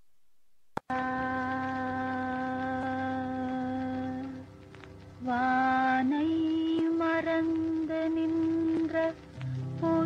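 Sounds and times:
woman singing a long note: 0.9 - 4.4.

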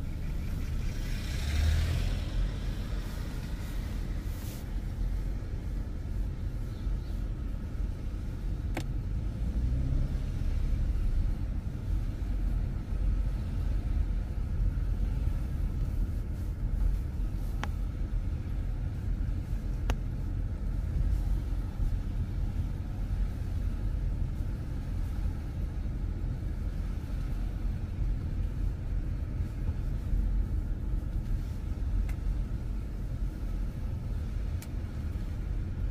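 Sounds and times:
car engine and tyre rumble: 0.0 - 35.9
faint clicks: 34.6 - 34.8.

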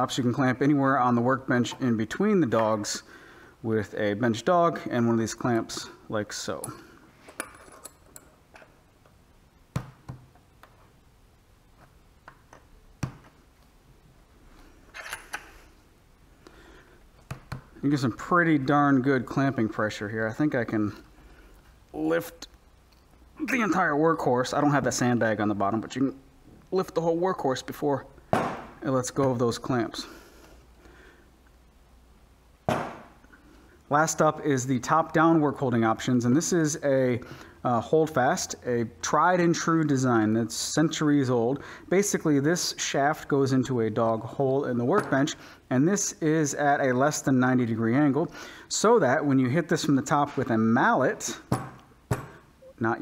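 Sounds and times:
low room noise: 0.0 - 53.0.

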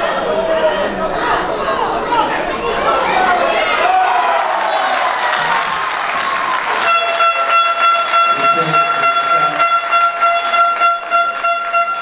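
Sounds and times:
air horn steady note: 6.8 - 12.0.

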